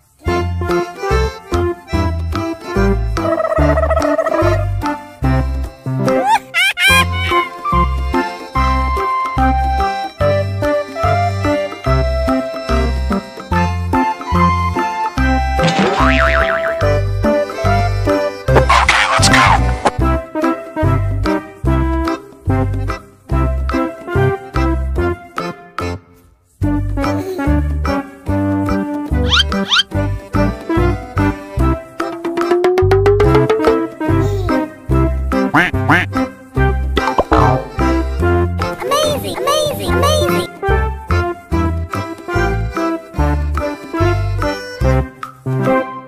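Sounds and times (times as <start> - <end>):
background music with bass line: 0.2 - 26.0, 26.6 - 38.8
springy boing sound effect: 15.6 - 17.0, 37.0 - 37.8
squeaky bending notes: 29.2 - 30.0.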